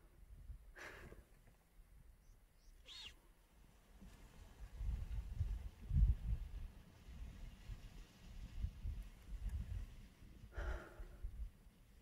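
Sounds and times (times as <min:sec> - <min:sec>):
high-pitched animal call: 0:02.8 - 0:03.2.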